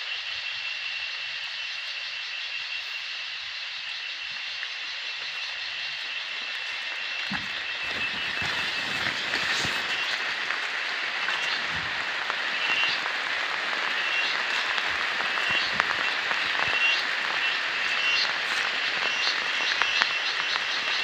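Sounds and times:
constant hiss: 0.0 - 21.0
small animals chirping: 13.8 - 21.0.

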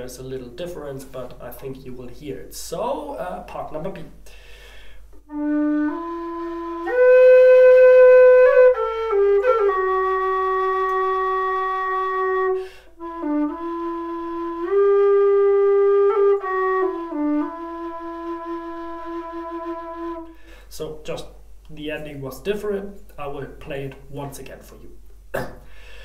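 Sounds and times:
low whistle slow melody: 5.2 - 20.5.

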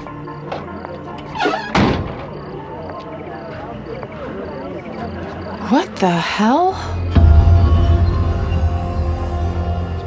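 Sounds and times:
background music: 0.0 - 6.0, 6.7 - 10.0.

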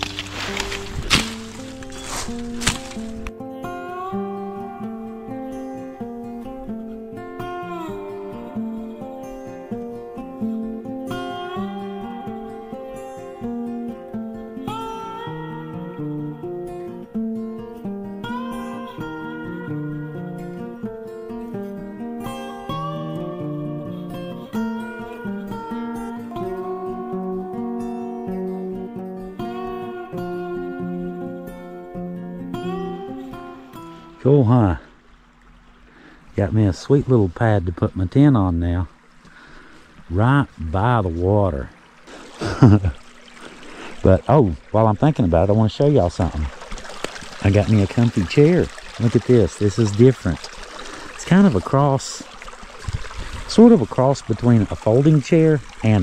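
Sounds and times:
tool striking ground: 0.0 - 3.3
acoustic guitar music: 0.0 - 56.0.

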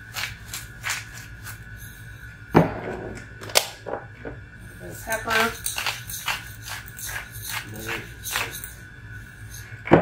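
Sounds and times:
pepper mill grinding: 0.0 - 2.0, 5.0 - 9.8.

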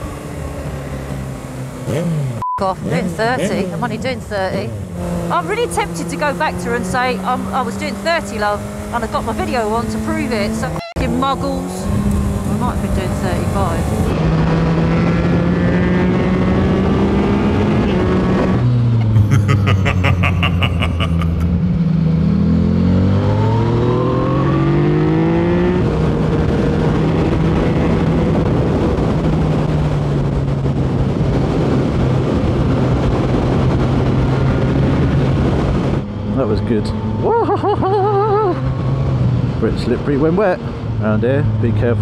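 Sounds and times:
motorcycle engine: 0.0 - 42.0
wind rush: 23.1 - 36.3.

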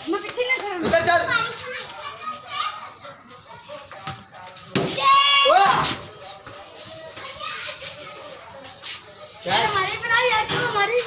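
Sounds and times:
children calling out: 5.0 - 6.0.

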